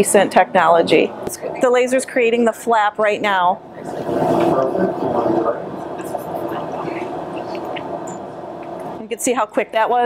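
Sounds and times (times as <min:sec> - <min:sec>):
steady hum: 0:00.0 - 0:10.0
low murmured voices: 0:03.6 - 0:09.1.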